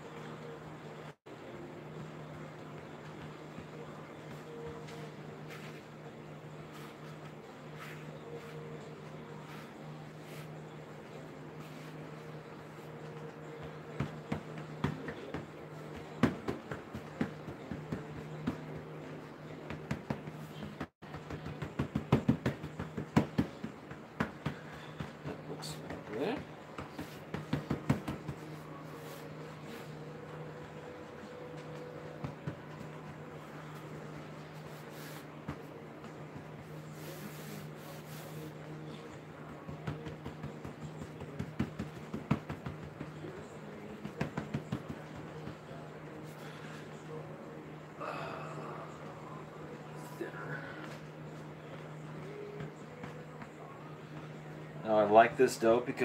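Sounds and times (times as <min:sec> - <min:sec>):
steady low hum: 0:00.0 - 0:56.0
hands patting dough: 0:19.6 - 0:29.8, 0:39.3 - 0:45.7.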